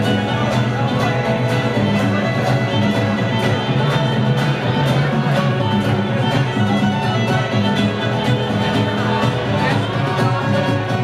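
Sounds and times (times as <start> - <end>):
acoustic guitar strumming: 0.0 - 11.0
frame drum and drum kit beat: 0.0 - 11.0.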